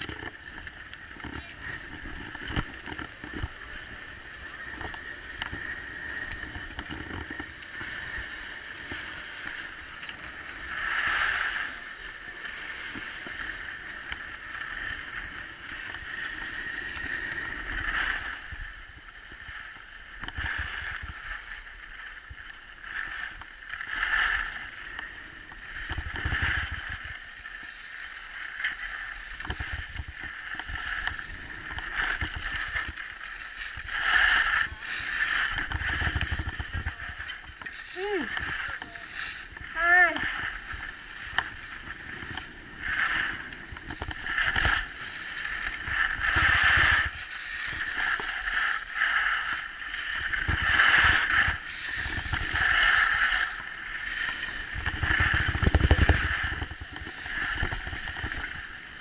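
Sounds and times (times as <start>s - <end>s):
skis sliding over snow: 0.0s - 59.0s
wind rumbling on microphone: 0.0s - 59.0s.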